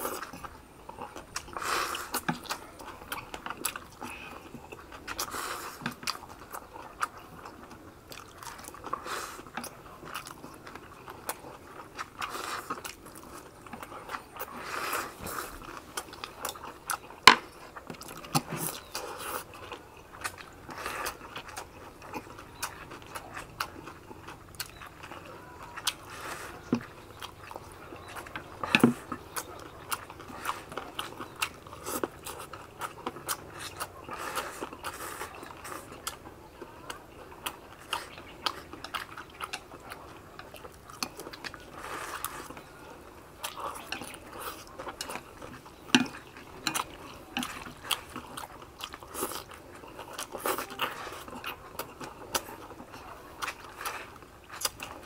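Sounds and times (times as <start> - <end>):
people chewing and crunching: 0.0 - 55.0.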